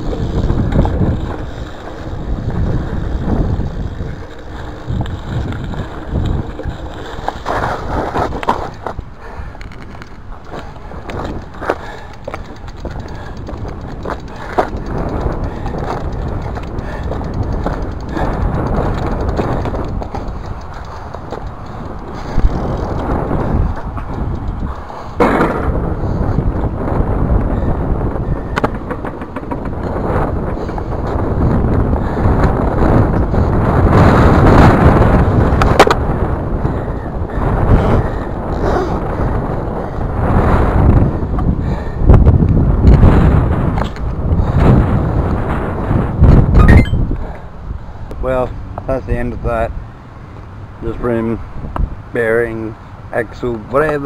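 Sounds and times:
bicycle tyres rolling over gravel: 0.0s - 46.2s.

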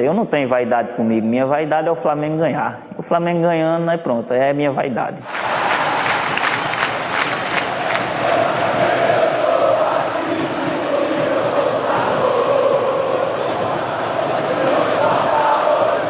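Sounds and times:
stadium crowd chanting: 5.2s - 16.0s.

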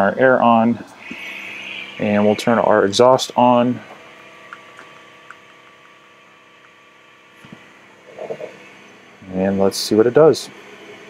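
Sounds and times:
air pump and exhaust fan humming: 0.0s - 11.0s.

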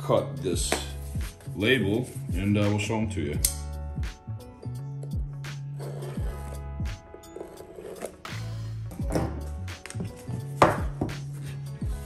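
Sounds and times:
background music with beat: 0.0s - 12.0s
box knocks on tabletop: 10.6s - 11.2s.

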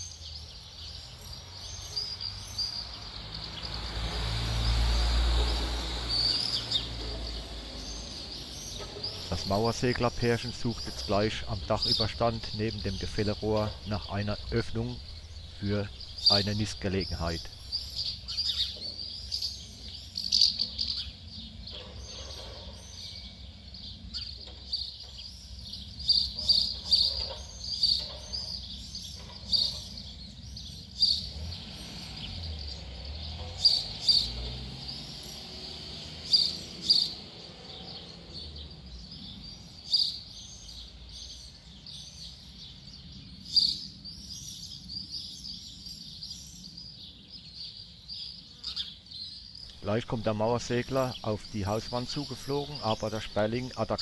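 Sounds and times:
small birds chirping: 0.0s - 54.0s.

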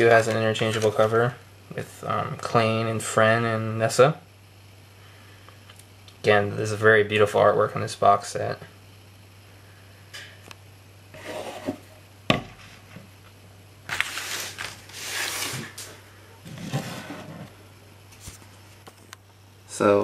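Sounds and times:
rubbing and scuffing: 11.2s - 11.9s, 13.9s - 19.0s.

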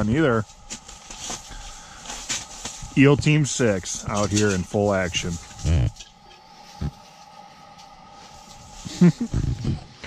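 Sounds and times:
faint steady hum: 0.0s - 10.0s
person laughing or exclaiming: 8.8s - 9.8s.

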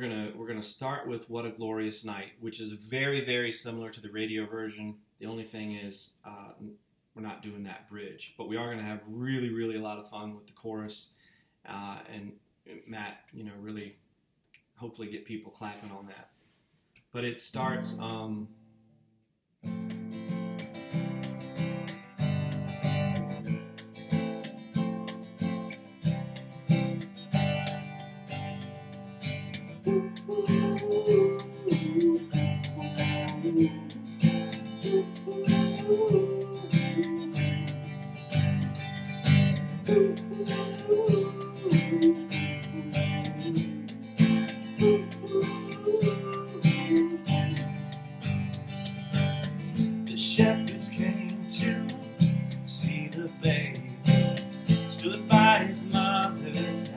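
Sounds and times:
acoustic guitar strumming: 19.6s - 56.9s
man singing wordless melody: 29.8s - 38.1s, 39.6s - 48.0s, 50.0s - 56.9s.

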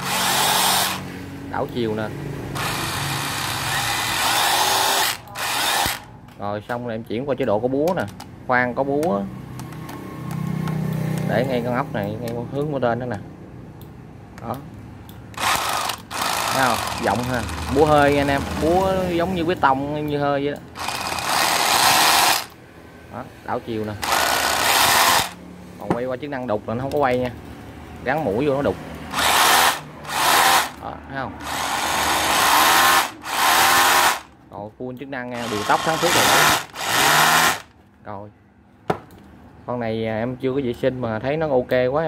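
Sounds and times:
rotary hammer drill whirring: 0.0s - 1.1s, 2.5s - 6.1s, 15.4s - 18.9s, 20.8s - 22.6s, 24.0s - 25.4s, 29.1s - 30.8s, 31.4s - 34.3s, 35.4s - 37.7s.

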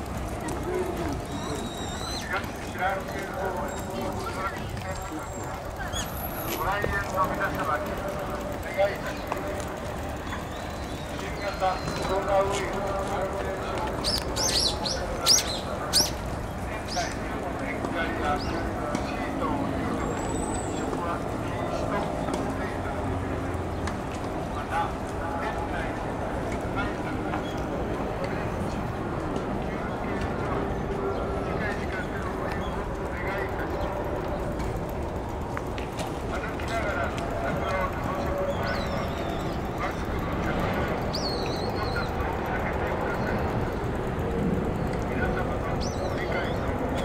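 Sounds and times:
background hum: 0.0s - 47.0s
faint distant voices: 0.0s - 47.0s
road traffic rumble: 0.0s - 47.0s
shrill bird call: 1.3s - 2.3s.

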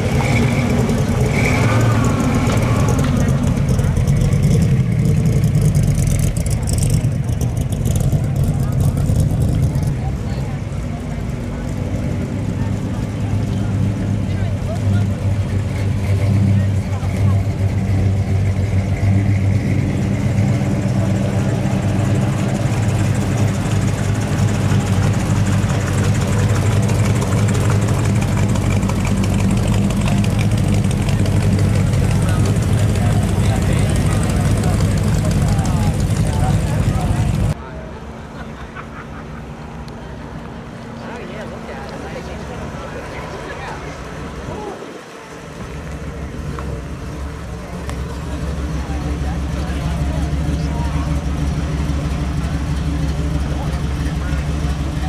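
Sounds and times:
cars driving slowly past: 0.0s - 55.0s
low engine rumble: 0.0s - 55.0s.

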